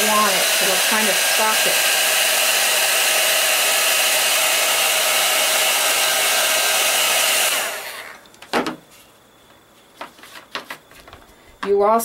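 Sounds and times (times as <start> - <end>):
heat gun running: 0.0 - 8.2.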